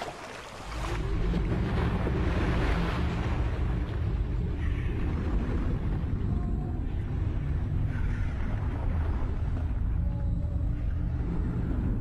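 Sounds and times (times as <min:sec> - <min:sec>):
underwater rumbling water: 0:00.0 - 0:12.0.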